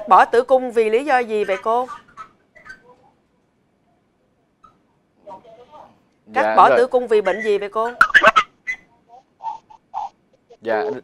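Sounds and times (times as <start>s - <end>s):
person speaking: 6.3s - 8.1s.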